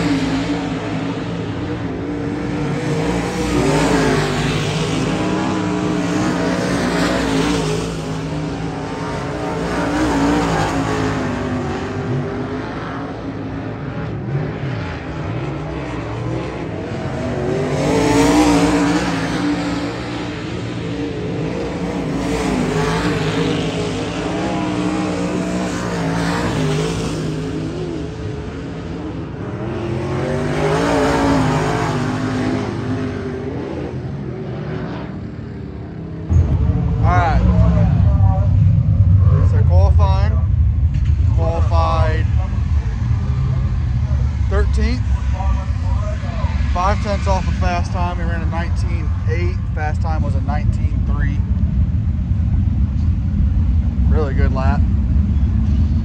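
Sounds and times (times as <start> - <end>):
race car engine at full throttle: 0.0 - 56.0.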